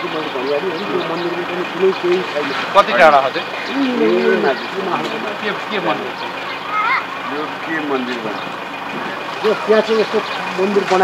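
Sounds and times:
man speaking: 0:00.0 - 0:06.2.

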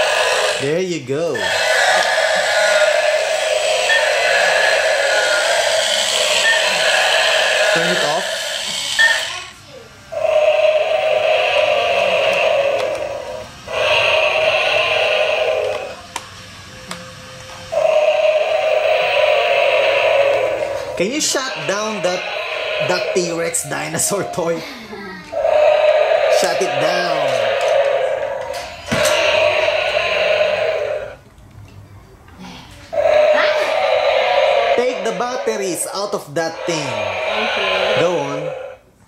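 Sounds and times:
toy dinosaur roar through speaker: 0:00.0 - 0:00.7, 0:01.3 - 0:09.4, 0:10.1 - 0:16.0, 0:17.7 - 0:24.7, 0:25.3 - 0:31.2, 0:32.9 - 0:38.8.

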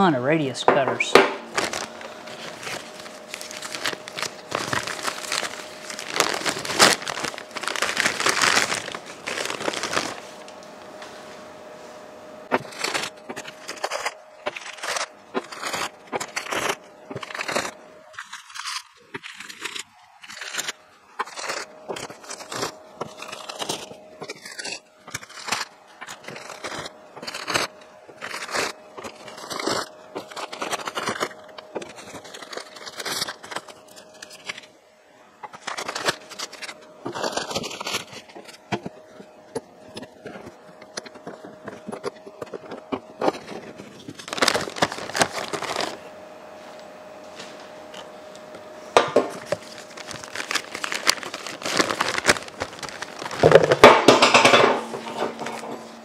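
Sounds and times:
faint steady hum: 0:00.0 - 0:56.0
newspaper rustling and crumpling: 0:01.2 - 0:11.5, 0:12.4 - 0:34.7, 0:35.5 - 0:39.2, 0:39.8 - 0:46.0, 0:49.0 - 0:55.8.

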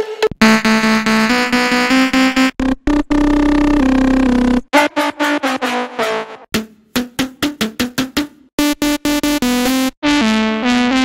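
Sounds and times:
bright synthesizer note: 0:00.4 - 0:06.4.

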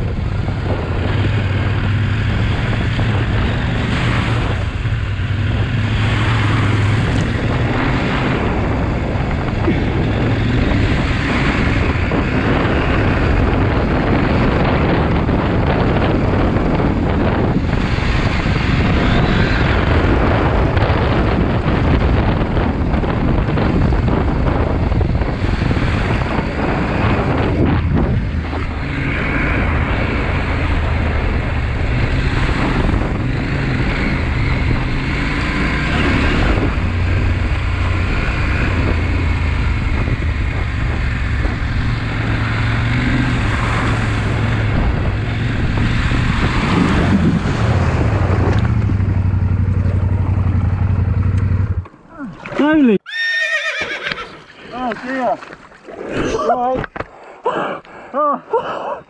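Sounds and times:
motorcycle engine running: 0:00.0 - 0:52.0
wind buffeting microphone: 0:00.0 - 0:57.2.

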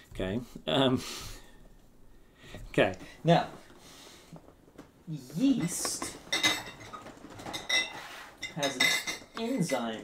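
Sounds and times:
hard containers clinking: 0:05.5 - 0:10.0.

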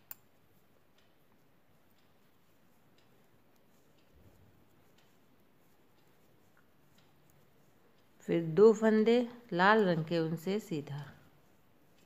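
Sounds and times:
metal knitting needles ticking: 0:00.0 - 0:12.0.

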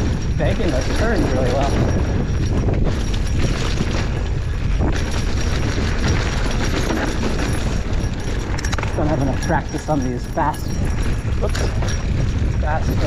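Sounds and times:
bike rattling over bumps: 0:00.0 - 0:13.0
tyres on dirt trail: 0:00.0 - 0:13.0
wind buffeting microphone: 0:00.0 - 0:13.0.

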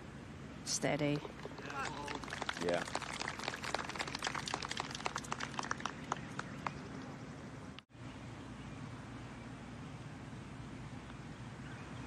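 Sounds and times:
quiet outdoor ambience: 0:00.0 - 0:12.0
scattered hand-clapping: 0:01.3 - 0:06.9.

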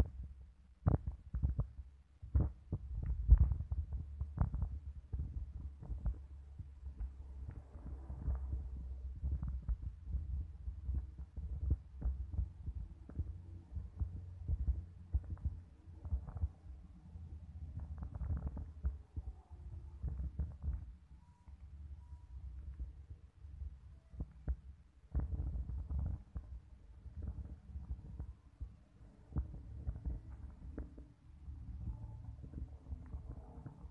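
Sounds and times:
wind buffeting microphone: 0:00.0 - 0:16.8, 0:22.9 - 0:33.9.

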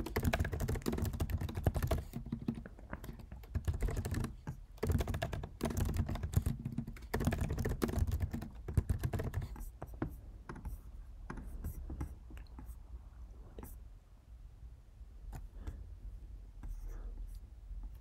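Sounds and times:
fast typing on keyboard: 0:00.0 - 0:10.7.

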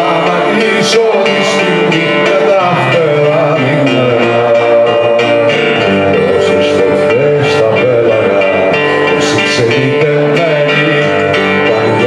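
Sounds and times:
acoustic guitar playing: 0:00.0 - 0:12.0
sliding melody line: 0:00.0 - 0:12.0.

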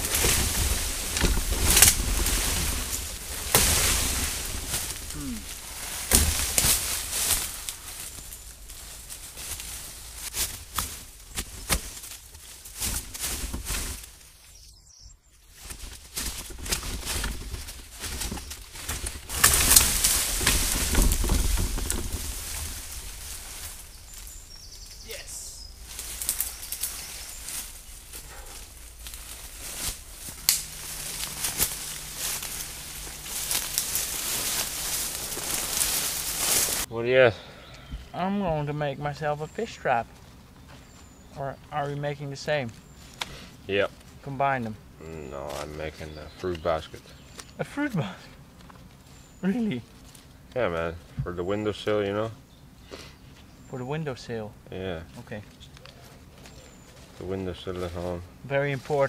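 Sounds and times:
undergrowth rustling and snapping: 0:00.0 - 0:14.8, 0:15.4 - 0:36.9, 0:38.4 - 0:53.9, 0:54.7 - 0:59.0.

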